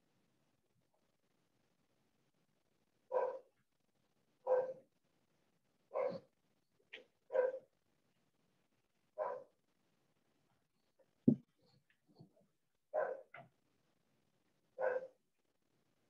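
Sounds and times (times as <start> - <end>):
dog yip: 3.1 - 3.5, 4.5 - 4.8, 6.0 - 6.3, 7.3 - 7.6, 13.0 - 13.3, 14.8 - 15.2
dog barking: 3.1 - 3.6, 4.4 - 4.8, 5.9 - 6.3, 7.3 - 7.7, 9.2 - 9.6, 12.9 - 13.4, 14.8 - 15.2.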